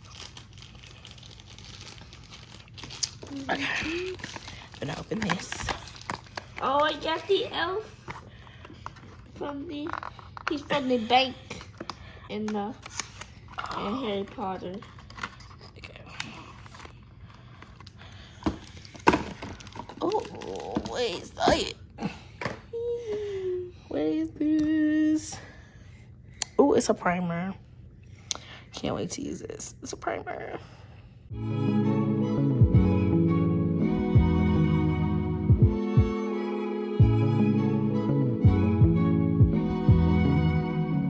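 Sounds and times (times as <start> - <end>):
cardboard packaging rustling: 0.0 - 10.8, 12.6 - 21.6.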